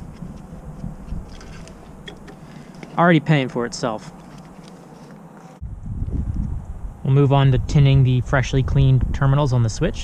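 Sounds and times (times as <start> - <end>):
low rumble: 5.6 - 9.2.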